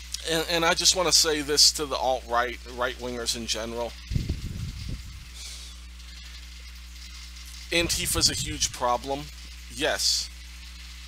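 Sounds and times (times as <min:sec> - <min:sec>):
low electrical hum: 0:00.0 - 0:11.0
low rumbling on microphone: 0:04.0 - 0:05.5.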